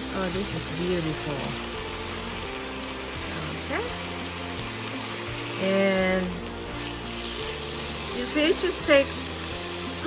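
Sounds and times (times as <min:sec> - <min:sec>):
background music held notes: 0:00.0 - 0:10.0
food sizzling in a pan: 0:00.0 - 0:10.0
spatula stirring: 0:00.2 - 0:10.0.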